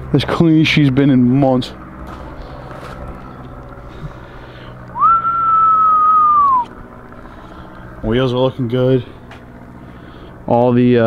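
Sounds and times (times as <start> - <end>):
person whistling long note: 4.9 - 6.7.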